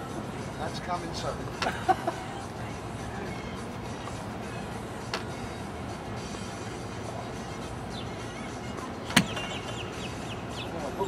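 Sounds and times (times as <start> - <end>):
outdoor background noise: 0.0 - 11.0
golf club striking ball: 9.1 - 9.7.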